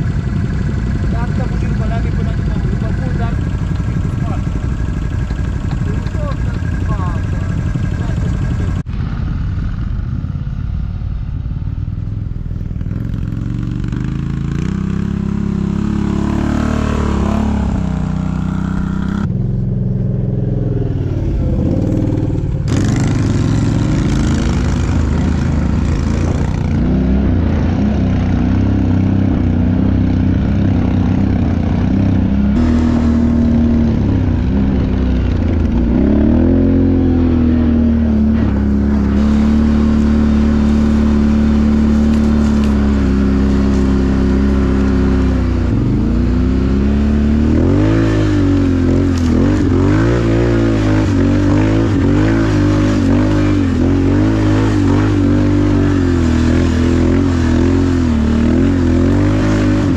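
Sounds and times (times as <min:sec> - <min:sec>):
atv engines revving: 0:00.0 - 0:59.9.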